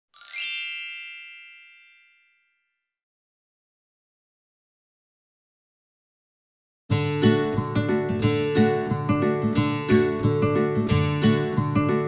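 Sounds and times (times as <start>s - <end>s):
bright high chime: 0.1s - 2.8s.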